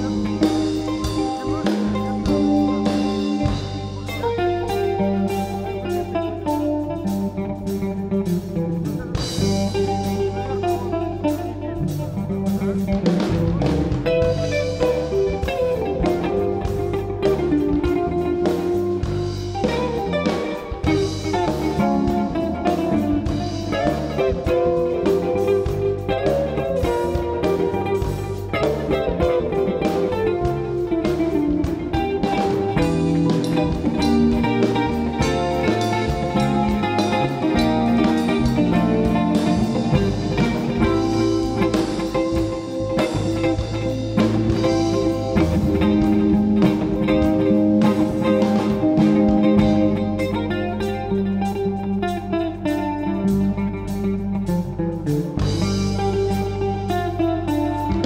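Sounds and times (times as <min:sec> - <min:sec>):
drums: 0:00.0 - 0:58.0
electric bass: 0:00.0 - 0:58.0
electric guitar lead lines: 0:00.0 - 0:58.0.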